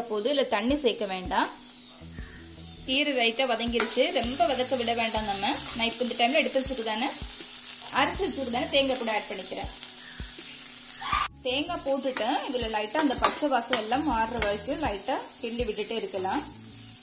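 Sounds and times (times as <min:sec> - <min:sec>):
leaves sizzling in a pan: 0:00.0 - 0:17.0
ladle scraping and knocking pan: 0:13.0 - 0:14.6.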